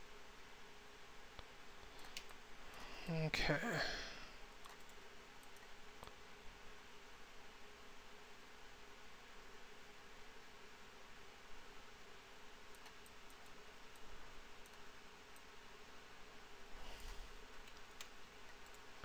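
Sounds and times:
faint room hiss: 0:00.0 - 0:19.0
computer mouse clicks: 0:01.4 - 0:02.8, 0:04.6 - 0:06.2, 0:12.7 - 0:15.5, 0:17.0 - 0:18.9.

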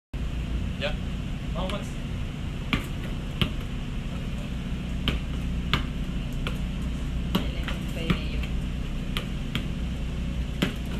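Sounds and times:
low hum: 0:00.2 - 0:10.9.

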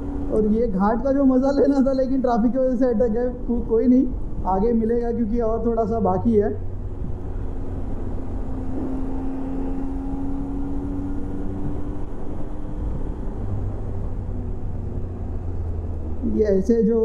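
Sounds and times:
motorcycle engine hum: 0:00.0 - 0:17.0
wind and road noise: 0:00.0 - 0:17.0.

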